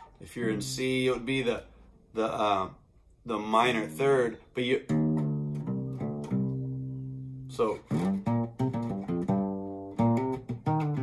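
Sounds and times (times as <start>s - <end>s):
acoustic bass guitar plucked: 3.4s - 11.0s.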